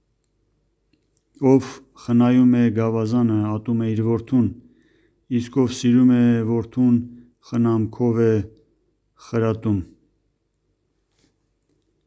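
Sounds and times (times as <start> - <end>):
man reading aloud: 1.3 - 10.1.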